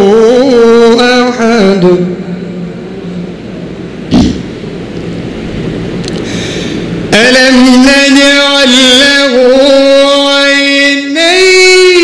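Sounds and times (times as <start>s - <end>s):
microphone rumble and hiss: 0.0s - 12.0s
loud thump on microphone: 4.1s - 4.4s.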